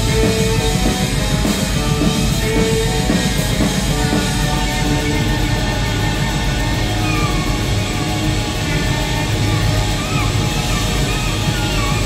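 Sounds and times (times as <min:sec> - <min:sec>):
live rock band playing: 0:00.0 - 0:12.0
sliding high notes: 0:00.0 - 0:12.0.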